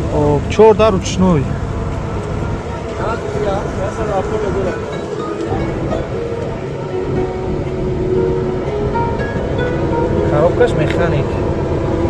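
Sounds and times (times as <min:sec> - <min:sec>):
steady low rumble: 0:00.0 - 0:12.0
music with held notes: 0:01.8 - 0:12.0.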